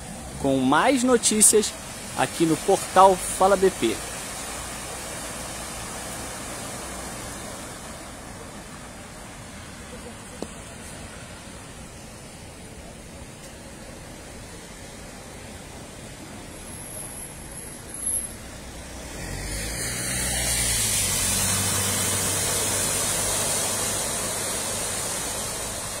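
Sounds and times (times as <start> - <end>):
water spraying from tyres: 0.0 - 26.0.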